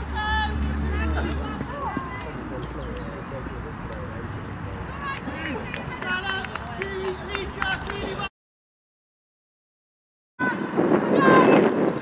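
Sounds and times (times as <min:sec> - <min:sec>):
voices shouting and calling out: 0:00.0 - 0:08.3, 0:10.4 - 0:12.0
wind rumble on microphone: 0:10.4 - 0:12.0.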